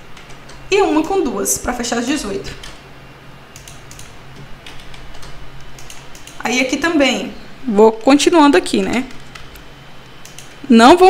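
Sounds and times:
computer keyboard clicking: 0.1 - 1.2, 3.5 - 6.5, 9.1 - 10.6.

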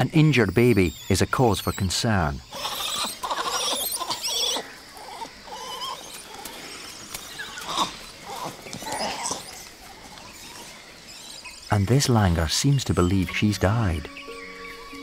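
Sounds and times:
monkeys squealing alarm calls: 0.4 - 11.8.

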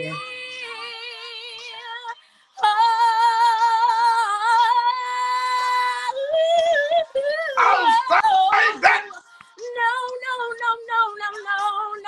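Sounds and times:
woman singing a cappella: 0.0 - 12.0.

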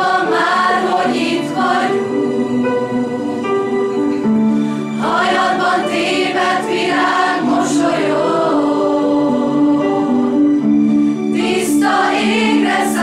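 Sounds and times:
choir singing held chords: 0.0 - 13.0.

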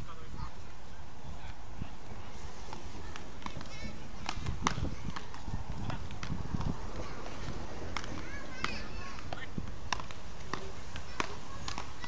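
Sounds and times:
wind on microphone: 0.0 - 12.0
paddles striking ball: 2.7 - 12.0.

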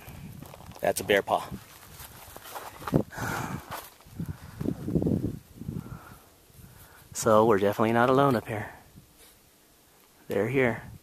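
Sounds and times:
footsteps on rocky trail: 0.1 - 5.6.

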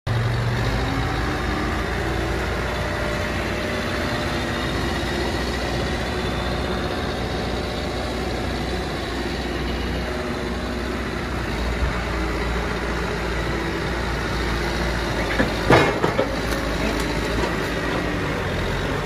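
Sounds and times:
backhoe diesel engine running: 0.1 - 19.0.

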